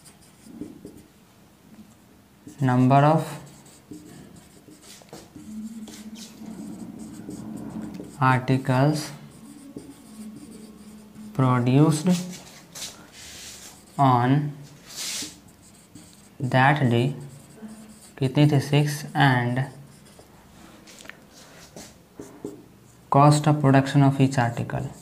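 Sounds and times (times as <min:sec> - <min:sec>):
marker pen writing on whiteboard: 0:00.0 - 0:01.1, 0:02.4 - 0:21.0, 0:21.6 - 0:22.7, 0:24.6 - 0:25.0.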